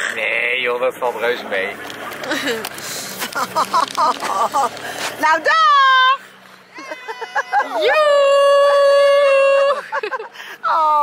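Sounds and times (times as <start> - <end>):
girl yelling high-pitched: 6.8 - 9.7.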